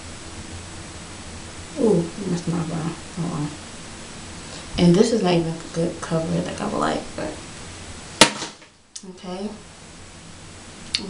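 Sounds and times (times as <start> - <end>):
background hiss: 0.0 - 11.0
person speaking: 1.8 - 3.6, 4.6 - 7.4.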